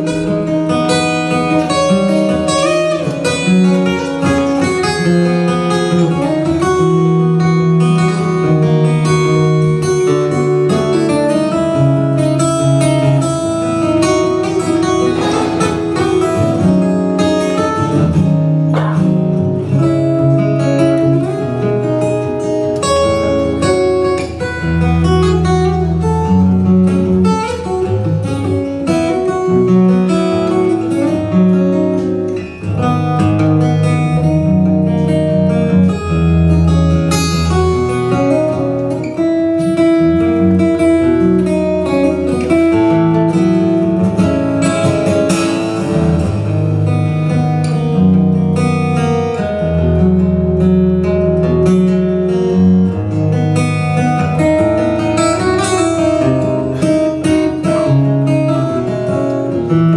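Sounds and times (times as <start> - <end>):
fingerstyle acoustic guitar: 0.0 - 59.9.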